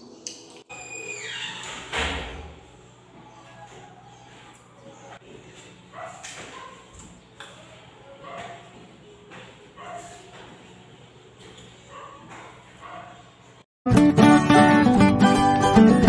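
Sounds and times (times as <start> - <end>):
guitar music: 13.9 - 16.0.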